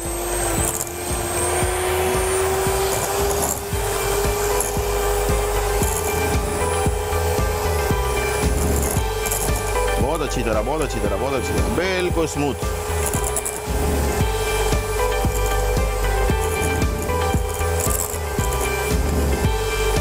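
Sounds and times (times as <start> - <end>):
electric hand mixer whine: 0.0 - 20.0.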